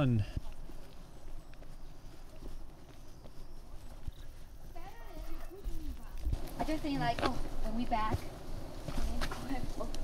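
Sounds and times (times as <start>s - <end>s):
footsteps on dirt trail: 0.0s - 10.0s
steady low rumble: 5.6s - 10.0s.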